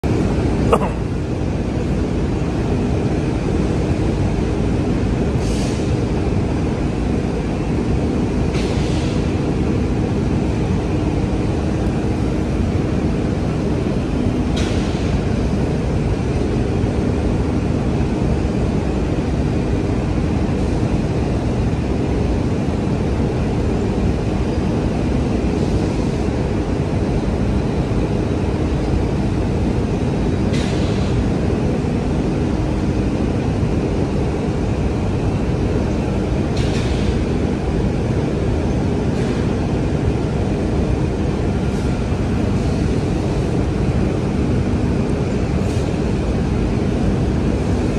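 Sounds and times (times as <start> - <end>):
loud low rumble with hum: 6.0 - 47.9.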